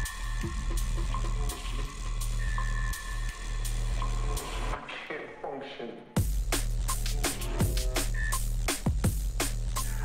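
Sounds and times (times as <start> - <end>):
deep bass: 0.0 - 4.8, 6.2 - 10.0.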